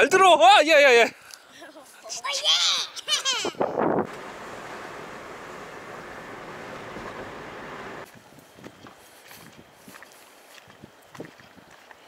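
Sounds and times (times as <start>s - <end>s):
road and wind noise in car: 3.8s - 8.9s.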